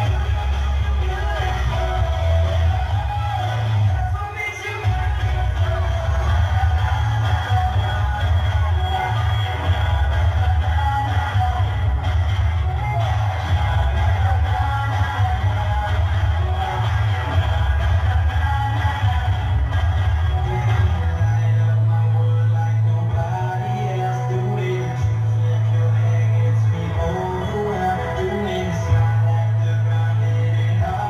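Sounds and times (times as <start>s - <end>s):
pop dance music with heavy bass: 0.0s - 31.0s.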